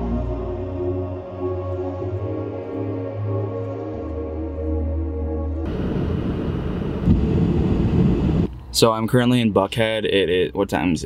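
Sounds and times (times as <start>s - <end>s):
ambient background music: 0.0s - 8.5s
car road and tyre noise: 5.6s - 8.9s
man talking: 8.7s - 11.0s.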